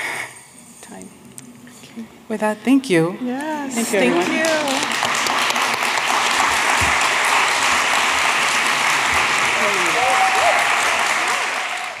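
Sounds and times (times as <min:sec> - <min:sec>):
audience applauding: 0:03.9 - 0:12.0
voices over clapping: 0:04.0 - 0:12.0.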